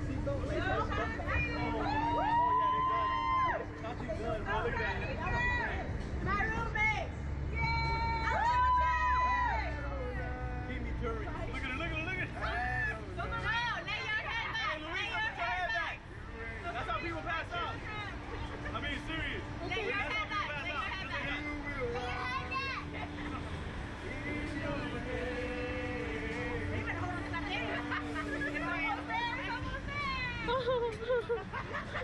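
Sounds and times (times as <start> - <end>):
people talking and calling out: 0.0 - 32.0
steady low hum: 0.0 - 32.0.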